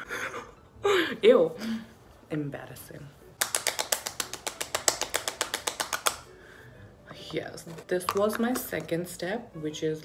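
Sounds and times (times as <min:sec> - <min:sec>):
fingertips patting cheeks: 0:03.4 - 0:06.3.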